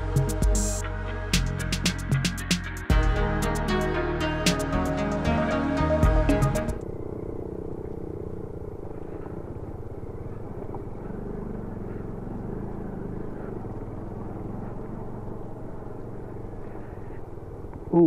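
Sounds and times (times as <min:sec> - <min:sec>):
motorcycle engine running: 0:00.0 - 0:18.0
tyres on rough gravel: 0:06.8 - 0:17.9.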